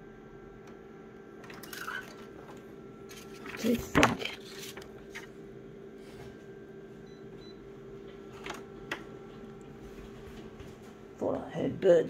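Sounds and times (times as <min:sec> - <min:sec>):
photocopier humming: 0:00.0 - 0:12.0.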